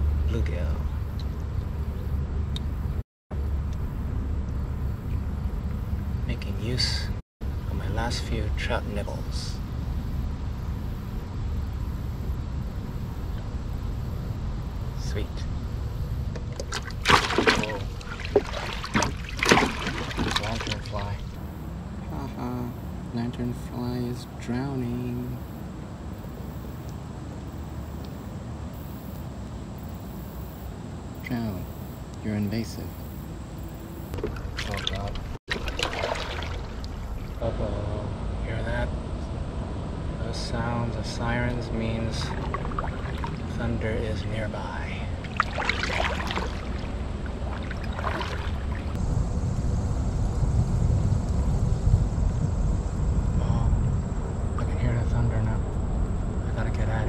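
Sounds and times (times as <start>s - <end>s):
low unsteady rumble: 0.0s - 28.7s, 31.7s - 57.0s
wind buffeting microphone: 33.3s - 57.0s.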